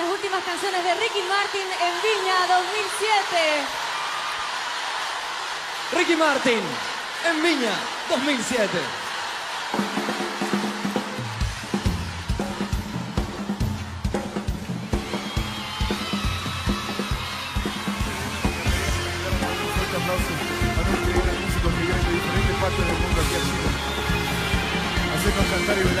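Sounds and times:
live band music: 9.2s - 26.0s
drums and bass: 9.5s - 26.0s.

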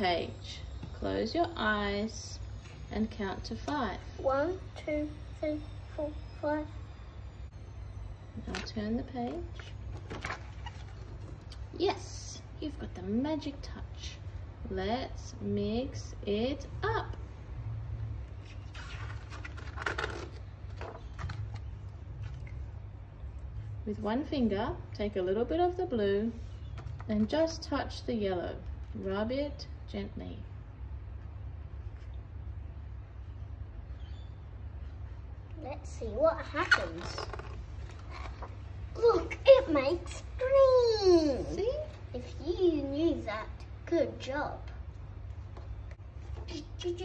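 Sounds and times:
low steady hum: 0.0s - 47.0s
book page turning: 9.5s - 11.7s, 18.3s - 22.7s, 36.6s - 38.7s
paper page turning: 18.4s - 22.6s.

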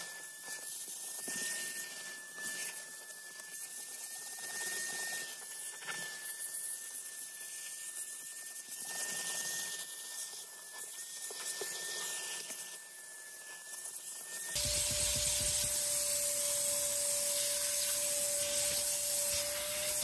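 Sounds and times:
vacuum cleaner hissing and whining: 0.0s - 20.0s.

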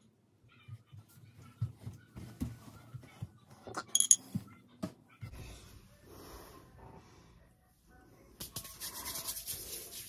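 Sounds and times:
sharp ringing clink: 4.0s - 4.2s.

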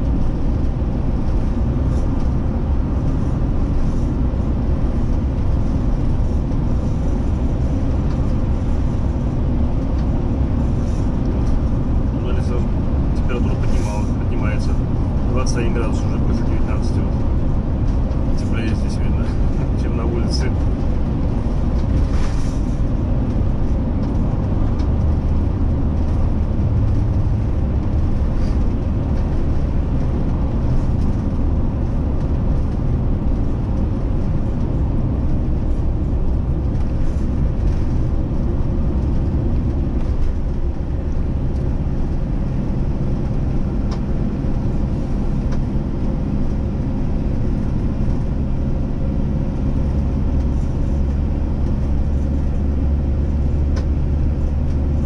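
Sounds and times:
road and engine rumble: 0.0s - 55.0s.

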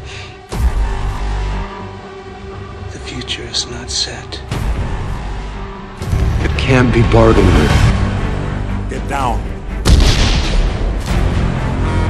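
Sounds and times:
sustained drone: 0.0s - 9.9s.

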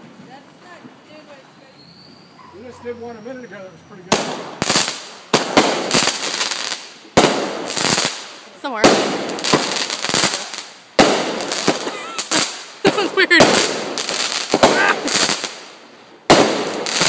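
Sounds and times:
firework bangs and crackle: 4.0s - 17.0s.

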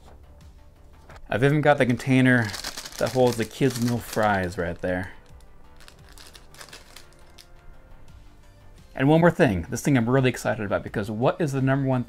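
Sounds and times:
paperboard container rustling: 5.8s - 7.5s.

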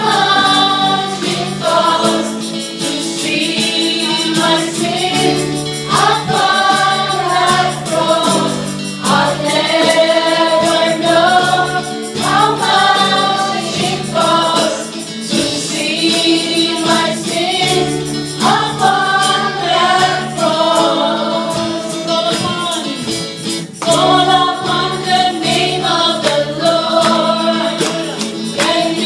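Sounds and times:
women singing together: 0.0s - 23.1s, 23.8s - 29.0s
acoustic and electric guitar: 0.0s - 29.0s
cajon percussive beat: 0.0s - 29.0s
keyboard: 0.0s - 29.0s.

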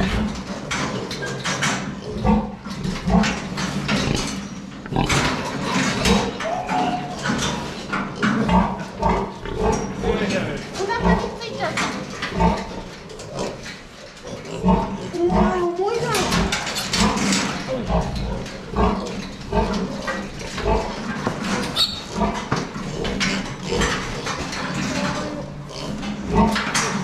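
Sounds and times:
pigs grunting: 0.0s - 27.0s
piglet squealing: 6.4s - 7.2s.

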